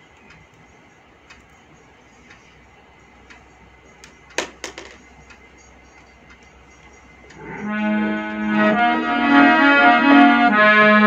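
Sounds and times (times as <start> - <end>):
clock ticking faintly: 0.0 - 7.5.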